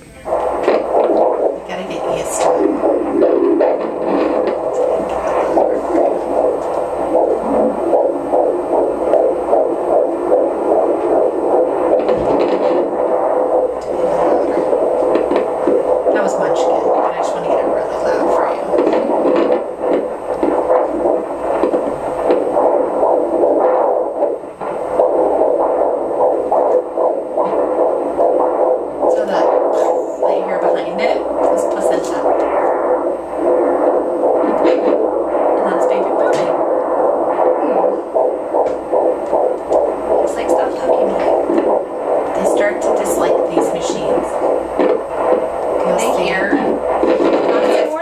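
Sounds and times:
doppler pulsing blood-flow sounds: 0:00.0 - 0:48.0.

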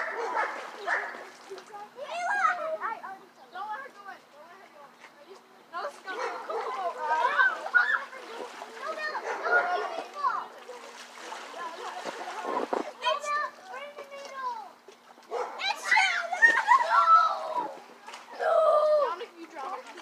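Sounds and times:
splashing water: 0:00.0 - 0:02.2, 0:06.0 - 0:20.0
children shouting: 0:06.4 - 0:10.5, 0:15.6 - 0:19.1.

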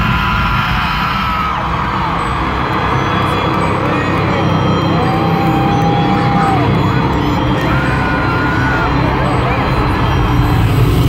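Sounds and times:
amplified concert music: 0:00.0 - 0:11.0
crowd screaming and cheering: 0:00.0 - 0:11.0
long held screams: 0:04.4 - 0:10.1.

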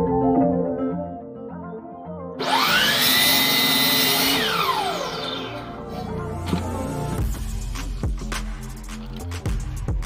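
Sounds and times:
miter saw motor whine: 0:02.4 - 0:06.2
saw blade cutting wood: 0:02.4 - 0:06.7.

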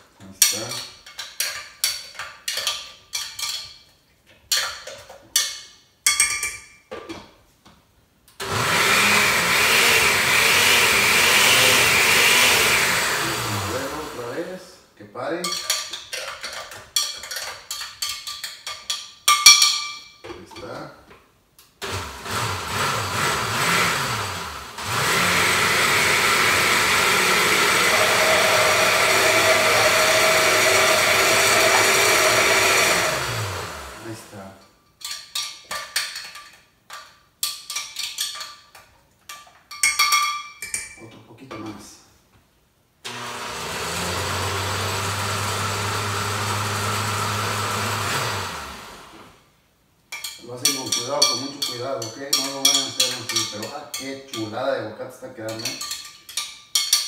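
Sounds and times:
blender running: 0:08.4 - 0:14.4, 0:21.8 - 0:34.3, 0:43.1 - 0:49.4.

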